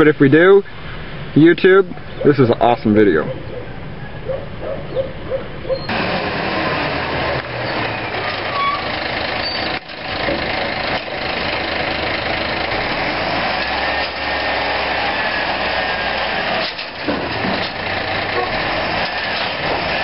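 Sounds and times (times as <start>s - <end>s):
garbage truck diesel engine running: 5.9s - 20.0s.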